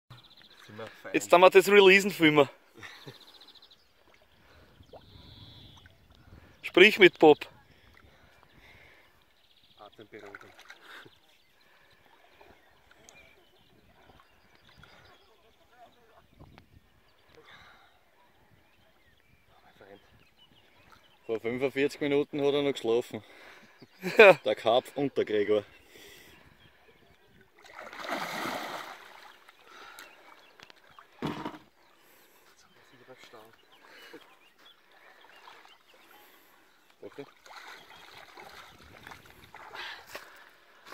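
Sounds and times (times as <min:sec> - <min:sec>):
fish splashing in water: 0:27.6 - 0:29.9.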